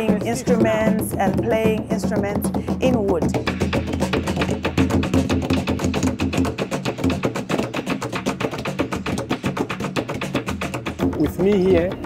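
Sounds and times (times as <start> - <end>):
drum beaten with sticks: 0.0 - 12.0
wooden hand drums: 0.0 - 12.0.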